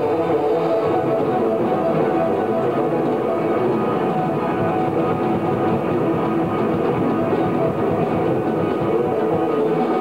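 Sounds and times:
live band with guitar and drums: 0:00.0 - 0:10.0.

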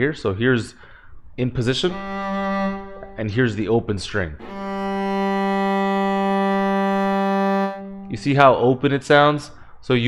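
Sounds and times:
sustained bowed viola note: 0:01.8 - 0:09.0.

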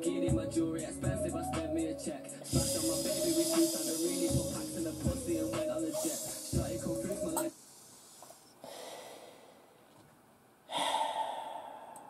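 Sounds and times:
man breathing out heavily: 0:08.6 - 0:09.7, 0:10.7 - 0:12.0.

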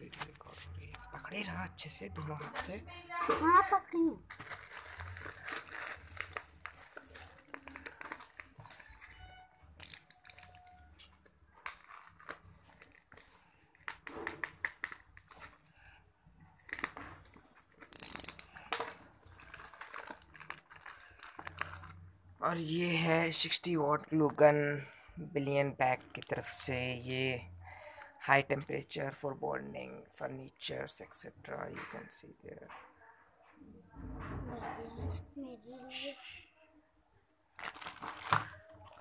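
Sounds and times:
plastic packaging crinkling: 0:04.2 - 0:22.1, 0:37.5 - 0:39.0.

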